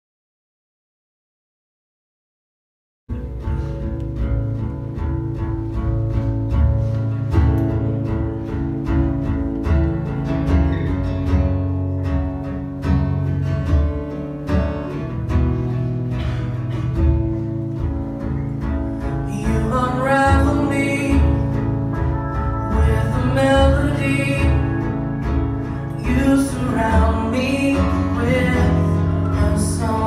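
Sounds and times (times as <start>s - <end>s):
electric guitar: 3.1s - 30.0s
strummed acoustic guitar: 3.1s - 30.0s
rhythmic low pulse: 21.2s - 26.5s.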